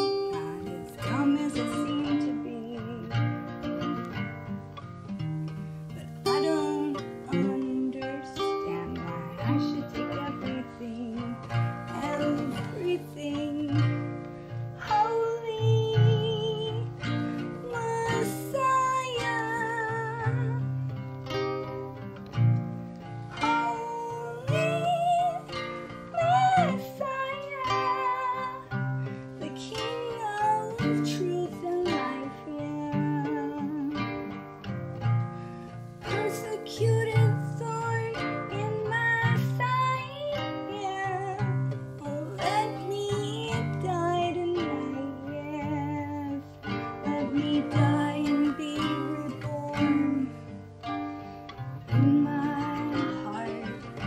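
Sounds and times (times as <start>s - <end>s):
acoustic guitar picked and strummed: 0.0s - 54.0s
woman singing: 0.0s - 54.0s.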